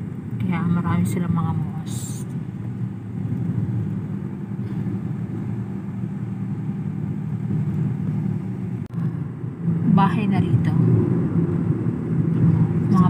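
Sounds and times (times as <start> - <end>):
car engine and road noise: 0.0 - 13.0.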